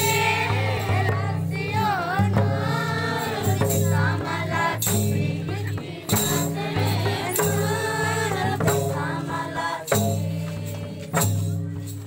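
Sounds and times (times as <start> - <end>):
group singing in chorus: 0.0 - 11.4
barrel drum: 0.0 - 12.0
jingling percussion: 0.0 - 12.0.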